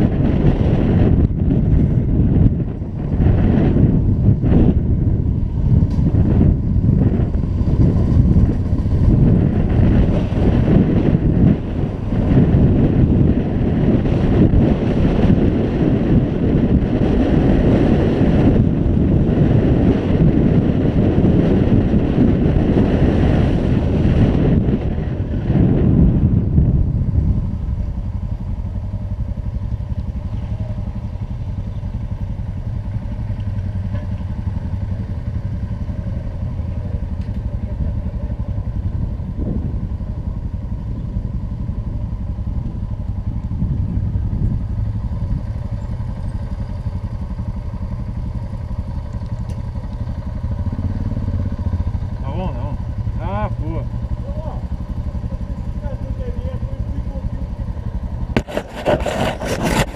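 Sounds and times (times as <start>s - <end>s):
motorcycle engine idling: 26.3s - 58.8s
knocks and rubbing on microphone: 58.3s - 59.9s.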